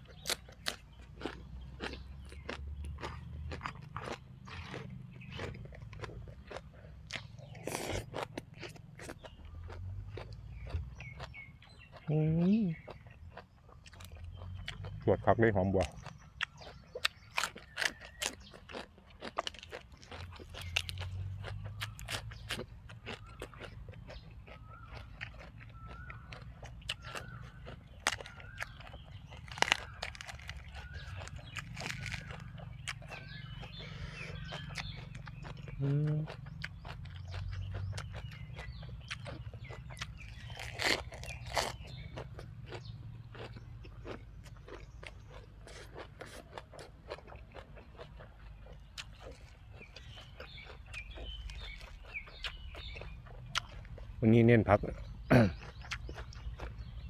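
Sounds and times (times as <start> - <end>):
chewing crisp crunches: 0.0 - 57.0.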